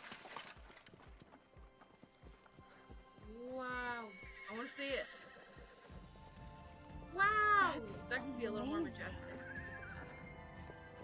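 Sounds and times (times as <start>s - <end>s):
quiet background music: 0.5s - 11.0s
distant horse neighing: 3.9s - 6.0s, 9.1s - 10.7s.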